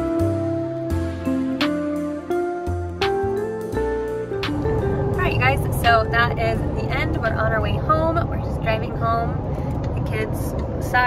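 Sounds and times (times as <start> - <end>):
gentle guitar tune: 0.0 - 7.8
road rumble inside car: 4.5 - 11.0.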